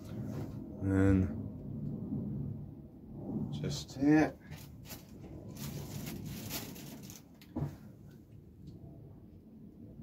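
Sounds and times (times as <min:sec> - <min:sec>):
foliage rustling and clicks: 0:04.6 - 0:07.6.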